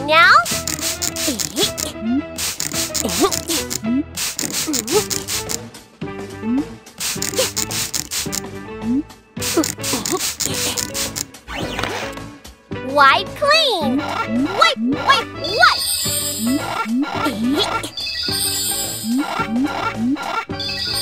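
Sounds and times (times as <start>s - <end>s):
background music: 0.0s - 21.0s
spray bottle squirts: 0.4s - 5.6s, 7.0s - 8.4s, 9.4s - 11.3s.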